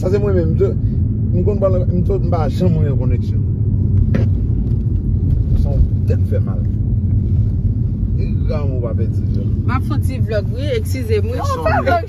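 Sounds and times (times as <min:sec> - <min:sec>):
car interior road rumble: 0:00.0 - 0:12.0.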